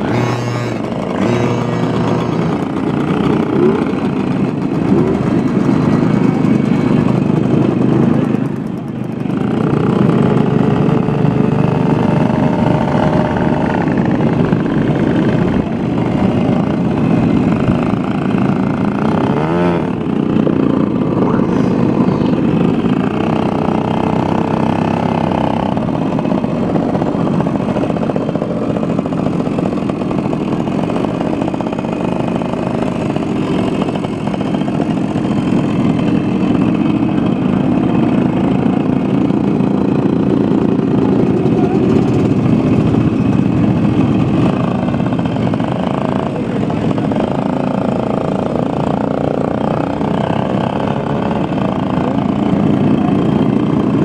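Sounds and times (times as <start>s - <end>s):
moped engines revving: 0.0s - 54.0s.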